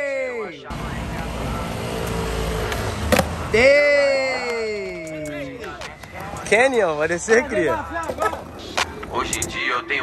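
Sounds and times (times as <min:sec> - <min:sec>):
skateboard wheels rolling on tiles: 0:07.2 - 0:09.6.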